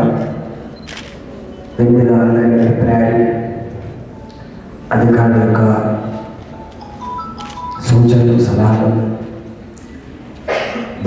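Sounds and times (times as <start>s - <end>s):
man speaking over loudspeakers: 0.0s - 0.5s, 1.8s - 4.0s, 4.9s - 6.4s, 7.8s - 9.5s.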